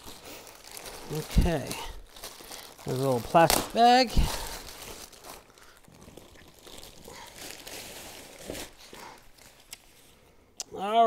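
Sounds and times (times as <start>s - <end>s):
plastic bag crinkling and rustling: 0.0s - 10.2s.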